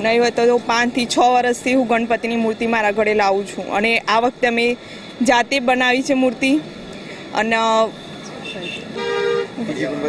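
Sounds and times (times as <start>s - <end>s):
street background: 0.0s - 10.0s
vehicle horn honk: 8.3s - 9.6s.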